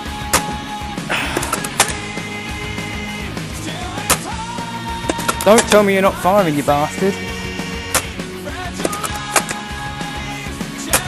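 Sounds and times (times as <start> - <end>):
rock music: 0.0 - 11.0
sharp cracks: 0.1 - 2.2, 2.8 - 5.9, 7.8 - 9.8, 10.7 - 11.0.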